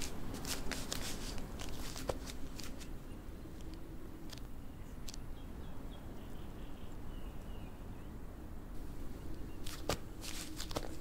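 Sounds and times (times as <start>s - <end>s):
rustling of armour and cloaks: 0.0s - 3.0s, 9.5s - 11.0s
low steady background hum: 0.0s - 11.0s.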